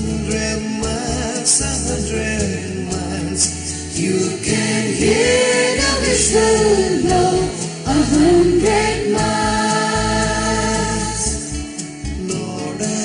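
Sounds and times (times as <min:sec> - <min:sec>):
mixed choir singing in harmony: 0:03.9 - 0:11.6.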